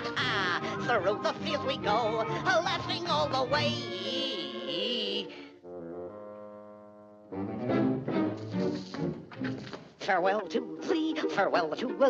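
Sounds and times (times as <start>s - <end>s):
orchestral cartoon music: 0.0s - 12.0s
brass and strings passage: 3.0s - 9.7s.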